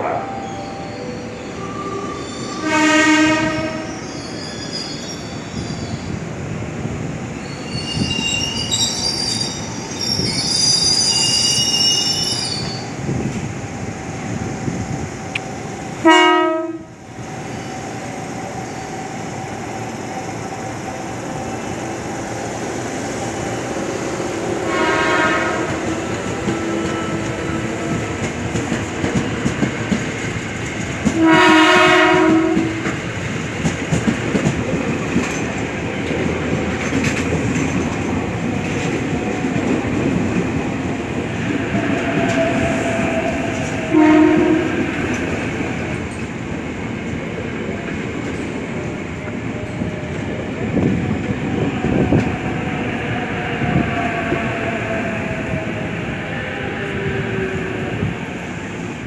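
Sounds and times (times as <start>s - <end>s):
train wheels squealing: 0.4s - 6.2s, 7.4s - 13.0s
train horn blasts: 2.5s - 3.9s, 16.0s - 17.0s, 24.6s - 26.0s, 31.1s - 33.0s, 43.8s - 44.9s
rumble of wheels on track: 12.6s - 59.0s.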